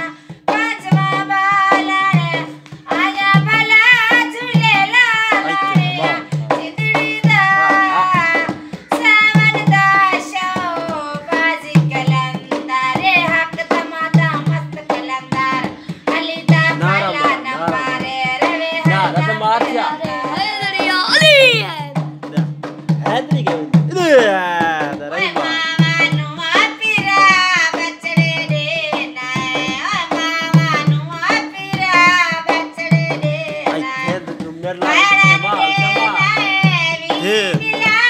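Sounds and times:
woman singing folk song: 0.0 - 21.9, 25.1 - 38.0
barrel hand drum beating: 0.0 - 38.0.

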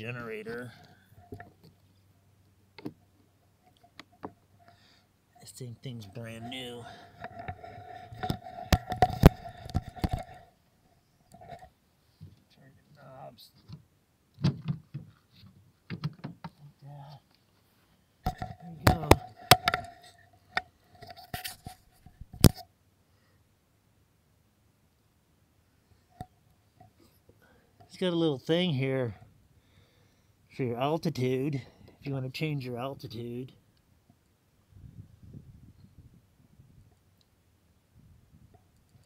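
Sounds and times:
camera handling rumble: 7.0 - 10.5
clicks and knocks: 7.2 - 10.4, 18.2 - 21.6.

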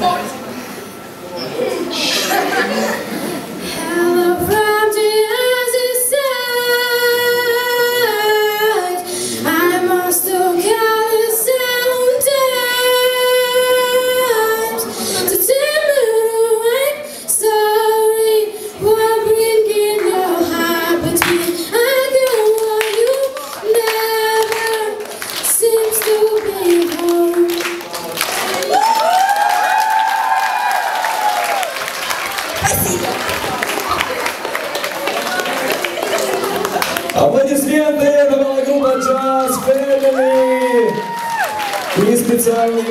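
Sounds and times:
young woman singing a ballad: 3.7 - 27.6.

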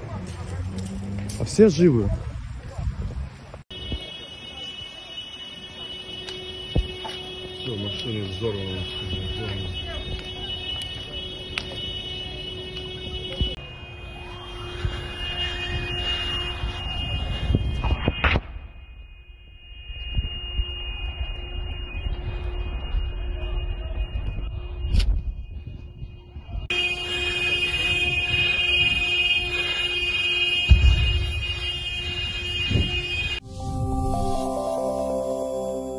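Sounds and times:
short electronic jingle: 33.4 - 35.9
steady high-pitched tone: 33.4 - 35.9.

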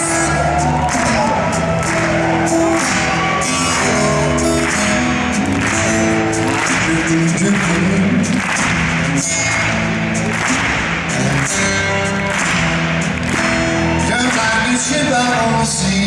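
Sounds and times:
acoustic guitar: 0.0 - 16.0
live blues band playing: 0.0 - 16.0.

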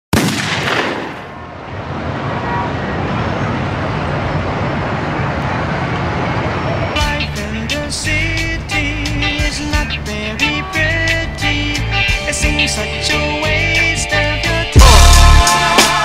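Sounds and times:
loud blast: 0.1 - 2.5
city street noise: 0.2 - 16.0
hip-hop beat: 7.0 - 16.0
pitched melody: 7.0 - 16.0.

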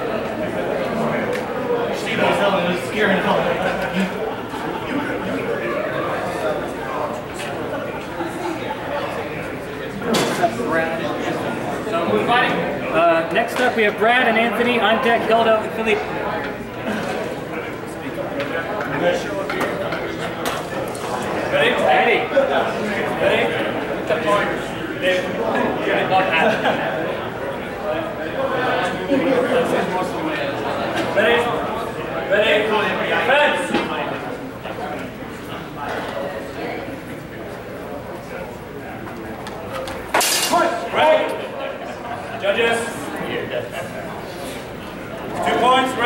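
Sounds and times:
murmur of voices in hall: 0.0 - 46.0
people talking indistinctly: 0.0 - 46.0.

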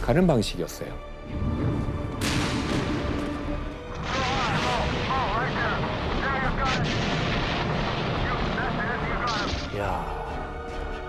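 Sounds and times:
low rumble of artillery fire: 1.6 - 9.7
sharp gunshot-like cracks: 2.2 - 3.4.

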